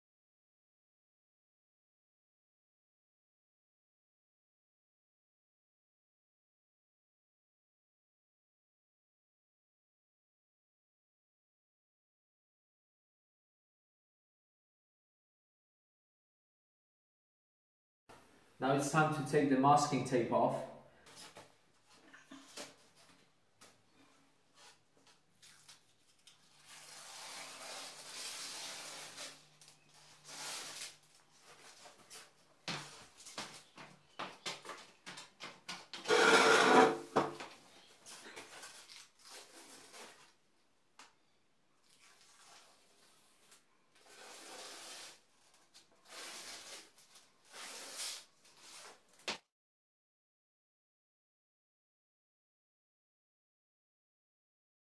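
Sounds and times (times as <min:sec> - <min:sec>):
masking tape peeling off wall: 0:24.6 - 0:32.3, 0:38.0 - 0:40.4, 0:41.8 - 0:49.3.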